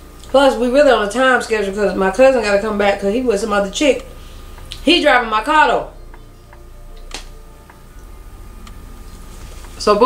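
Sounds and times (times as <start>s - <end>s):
faint steady hum: 0.0s - 10.0s
faint ticking: 2.1s - 9.8s.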